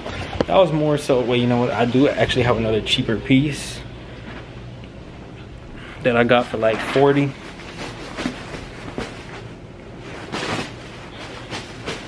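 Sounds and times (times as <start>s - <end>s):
bag rustling: 0.0s - 12.0s.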